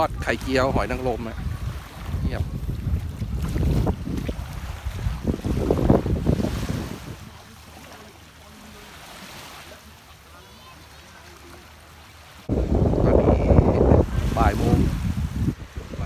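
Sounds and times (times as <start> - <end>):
wind buffeting microphone: 0.0 - 7.4, 12.5 - 16.0
small waves washing onto beach: 0.0 - 16.0.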